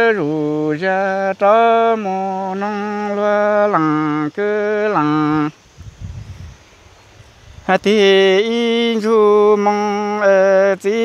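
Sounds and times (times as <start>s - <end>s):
faint low noise: 0.0s - 11.0s.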